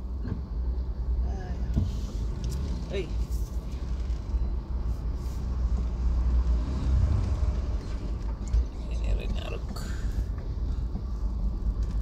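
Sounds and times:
vehicle engine and road rumble: 0.0 - 12.0.

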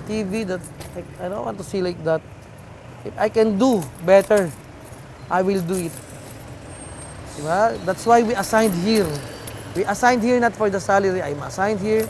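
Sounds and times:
man talking: 0.0 - 2.2, 3.1 - 4.6, 5.3 - 6.0, 7.4 - 12.0
motor vehicle running: 0.0 - 12.0
street traffic noise: 0.0 - 12.0.

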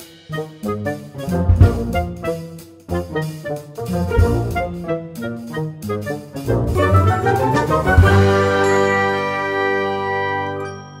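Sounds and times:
jingle chord ringing out: 8.3 - 11.0.

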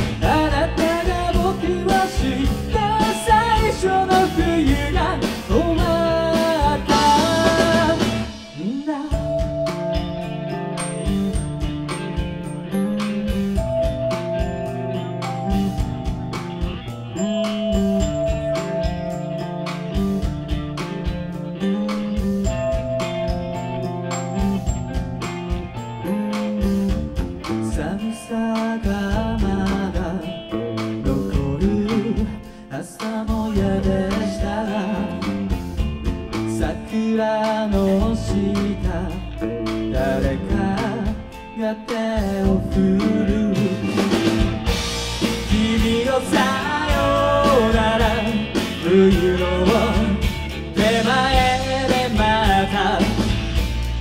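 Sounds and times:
drum kit steady beat: 0.0 - 54.0
electric guitars: 0.0 - 54.0.

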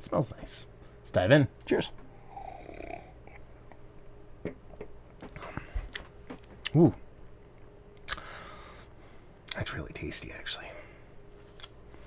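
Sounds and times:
person slurping beer: 2.3 - 3.1.

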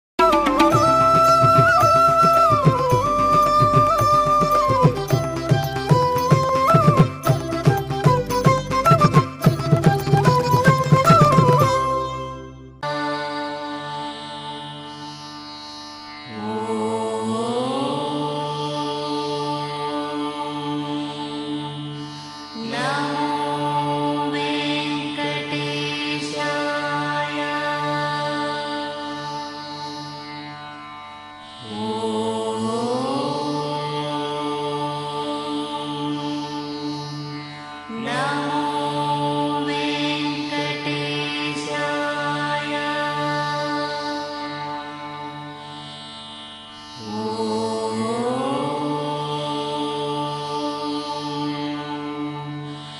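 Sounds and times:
chant-like devotional music: 0.2 - 52.9.

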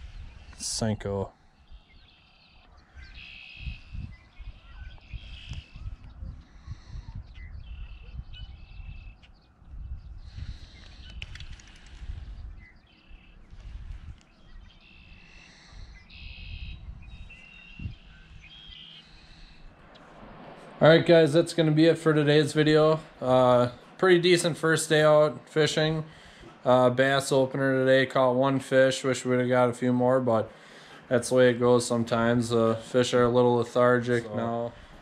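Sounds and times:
wind rumbling on microphone: 0.0 - 24.6
birds chirping: 0.0 - 35.0.

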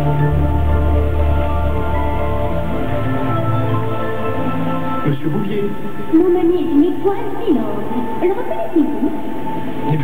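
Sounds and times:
low drone: 0.0 - 10.0.

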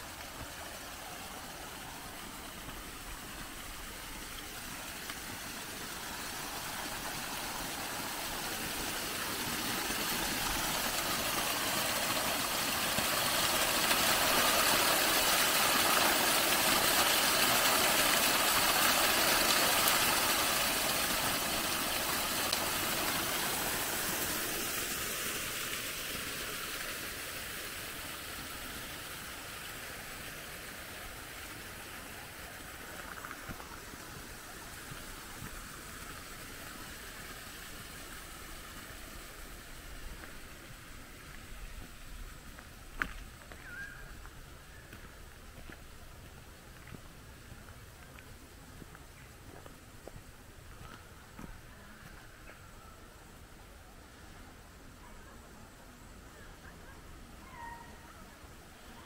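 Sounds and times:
small waterfall rushing: 0.0 - 59.0.

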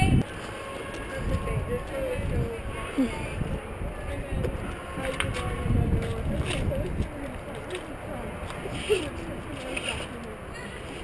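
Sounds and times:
indistinct voices: 0.0 - 11.0.

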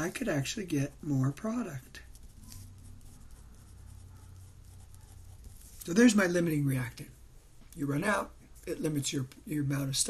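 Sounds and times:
steady low hum: 0.0 - 10.0
pen scratching on paper: 2.0 - 6.6.

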